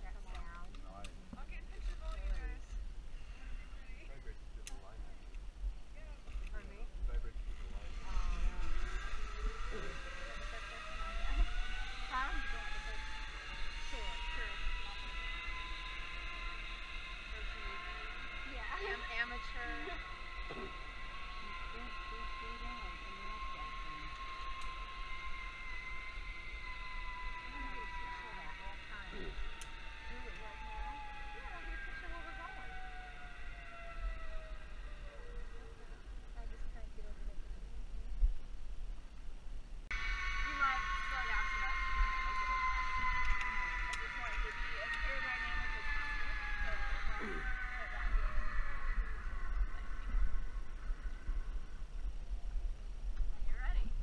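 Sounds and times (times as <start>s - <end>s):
zipline pulleys whining: 0.0s - 54.0s.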